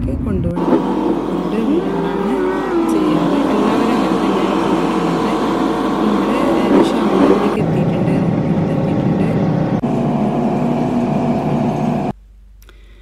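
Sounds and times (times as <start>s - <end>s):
road and engine noise in car: 0.5s - 12.1s.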